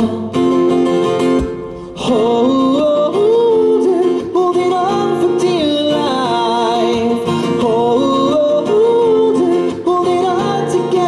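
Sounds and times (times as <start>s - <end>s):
acoustic guitar: 0.0s - 11.0s
man singing: 0.0s - 11.0s.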